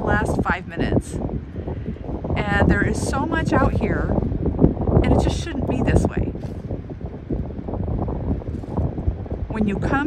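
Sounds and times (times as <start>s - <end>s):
wind blowing across microphone: 0.0s - 10.0s.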